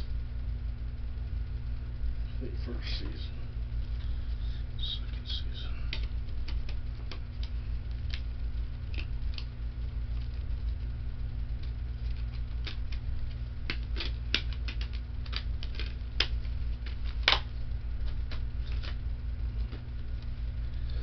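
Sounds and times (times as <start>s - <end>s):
steady low hum: 0.0s - 21.0s
small hard objects clicking: 11.6s - 19.0s.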